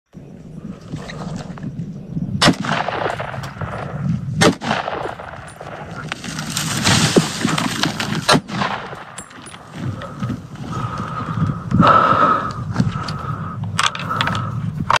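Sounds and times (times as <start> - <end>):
hunting gun shots: 2.4 - 10.2.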